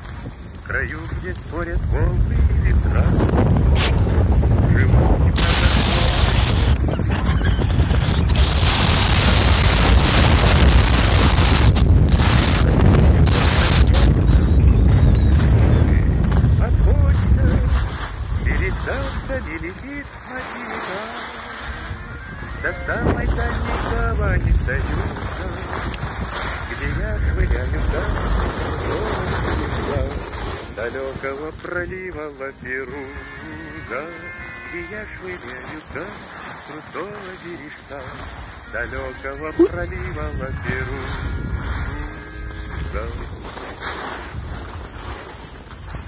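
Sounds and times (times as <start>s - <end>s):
skis scraping snow: 0.0s - 46.0s
wind rumbling on microphone: 0.0s - 46.0s.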